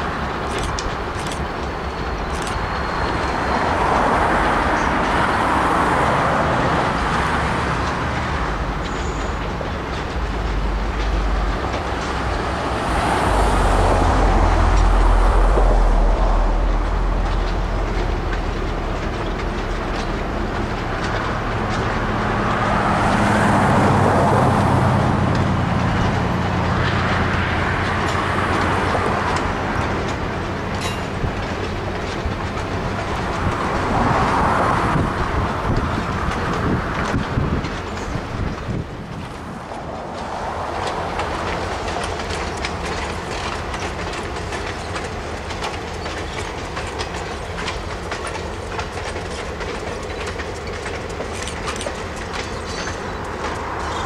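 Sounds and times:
diesel locomotive engine drone: 0.0 - 54.0
rail rumble: 0.0 - 54.0
train wheels clicking over rail joints: 0.0 - 54.0.

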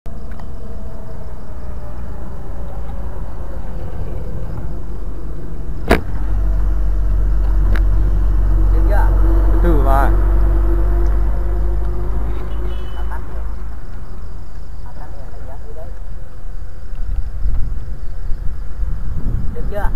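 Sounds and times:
motorcycle engine rumble: 0.0 - 15.6
wind buffeting microphone: 0.2 - 19.9.

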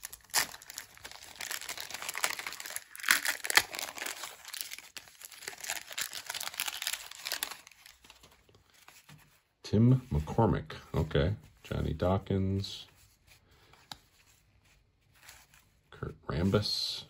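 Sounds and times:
wrapper tearing and crinkling: 0.0 - 8.4.

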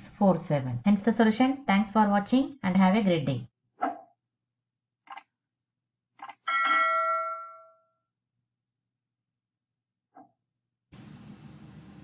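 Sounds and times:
bright bell ding: 6.5 - 7.9.

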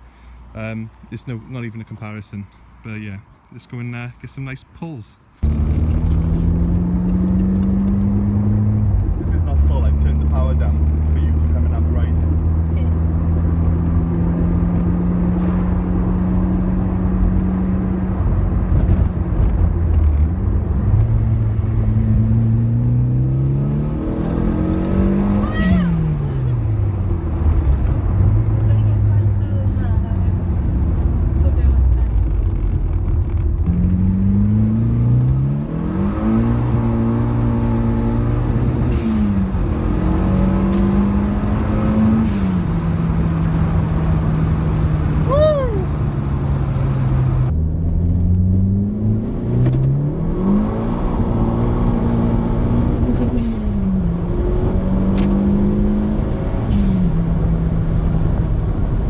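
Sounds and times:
turbocharged car engine revving: 5.4 - 58.5.

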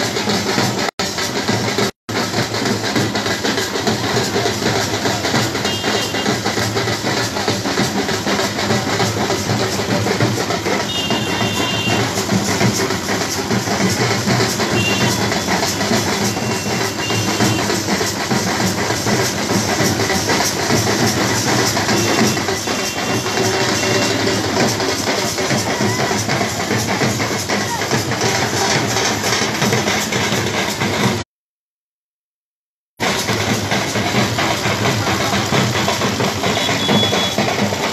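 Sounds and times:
drums beaten with sticks: 0.0 - 31.2, 33.0 - 37.9
large crowd noise: 0.0 - 31.2, 33.0 - 37.9.

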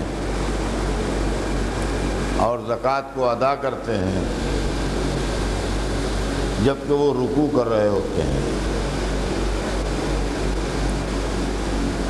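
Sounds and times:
low hum: 0.0 - 12.0
rushing background noise: 0.0 - 12.0
person speaking: 6.6 - 8.6.

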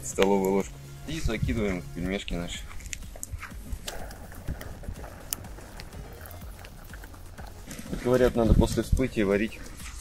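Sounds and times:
wood fire crackling: 0.0 - 10.0.

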